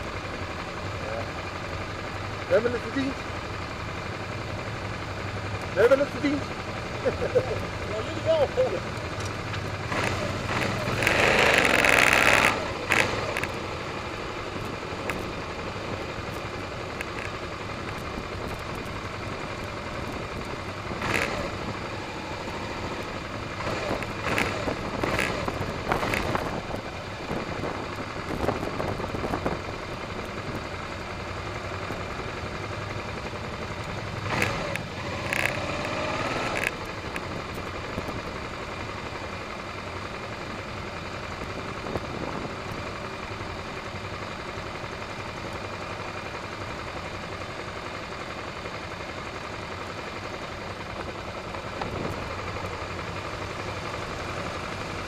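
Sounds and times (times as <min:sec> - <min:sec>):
motorcycle engine running: 0:00.0 - 0:55.0
other motorcycles: 0:00.0 - 0:55.0
road and wind noise: 0:00.0 - 0:55.0.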